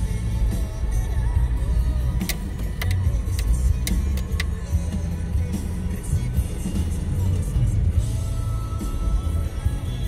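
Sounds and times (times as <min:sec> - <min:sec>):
car engine and road rumble: 0:00.0 - 0:10.0
music playing: 0:00.0 - 0:10.0
sharp clicks: 0:02.2 - 0:04.6.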